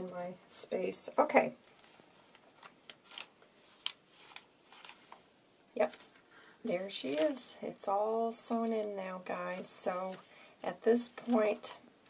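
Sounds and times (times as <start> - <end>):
paper pages rustling: 1.6 - 7.6.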